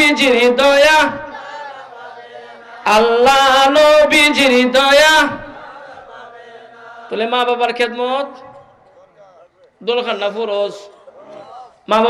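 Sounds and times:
man chanting devotional song: 0.0s - 1.3s, 2.8s - 5.6s, 7.1s - 11.0s.

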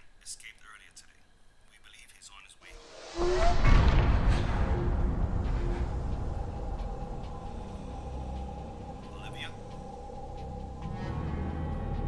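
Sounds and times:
faint whispering: 7.4s - 10.5s.

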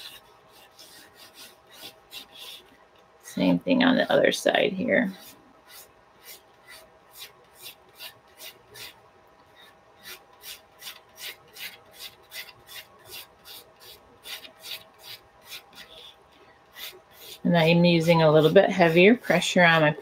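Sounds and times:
pencil sketching on paper: 0.0s - 2.7s, 5.1s - 9.0s, 9.6s - 19.9s.

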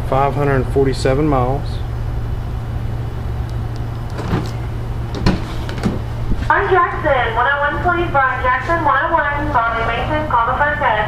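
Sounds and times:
low hum: 0.0s - 10.5s.

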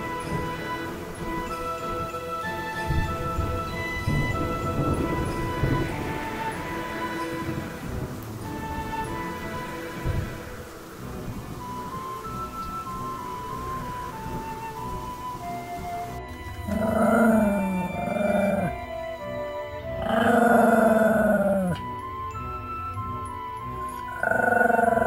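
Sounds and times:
background music: 0.0s - 25.0s
puppy howling: 16.6s - 18.9s, 19.8s - 21.9s, 24.0s - 25.0s.

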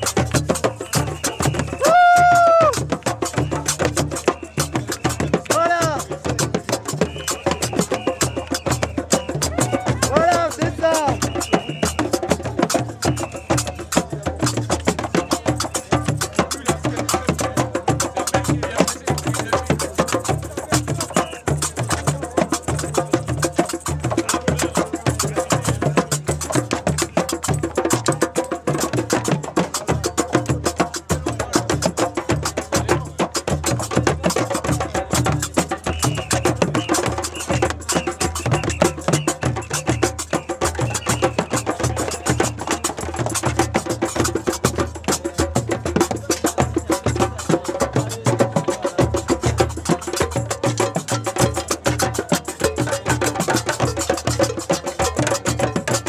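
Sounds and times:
djembe beaten by hand: 0.0s - 56.0s.

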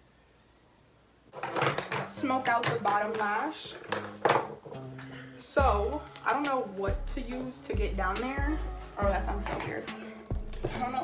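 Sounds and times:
woman's voice: 2.1s - 3.8s, 5.4s - 10.0s, 10.6s - 11.0s.

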